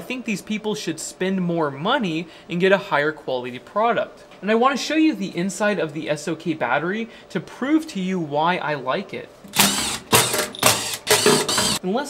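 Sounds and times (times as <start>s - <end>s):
power screwdriver whirring: 9.5s - 11.8s.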